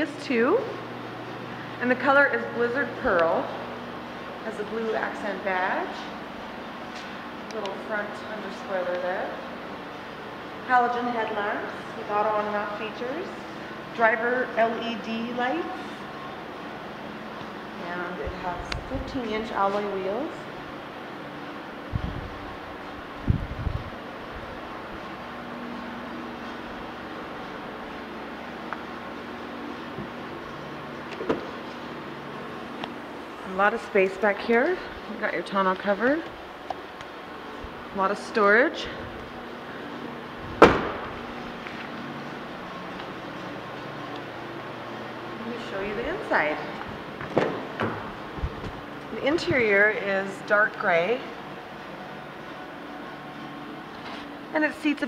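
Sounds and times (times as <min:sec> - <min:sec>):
room hum: 0:00.0 - 0:55.0
car door thumps: 0:40.6 - 0:41.2.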